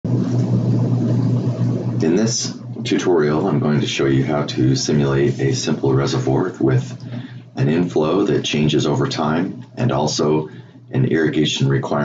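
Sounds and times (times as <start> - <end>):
loud low hum and rumble: 0.0 - 12.0.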